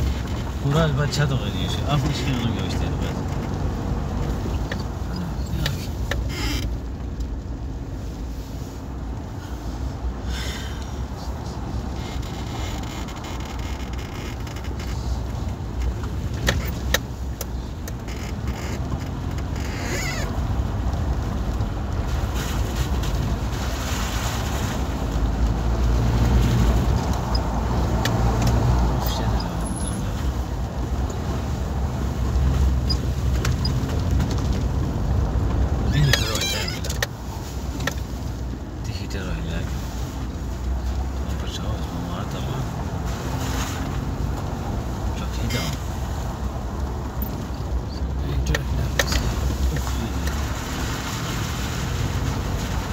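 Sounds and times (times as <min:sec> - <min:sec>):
vehicle on gravel road: 0:00.0 - 0:52.9
brief squeak: 0:35.9 - 0:36.9.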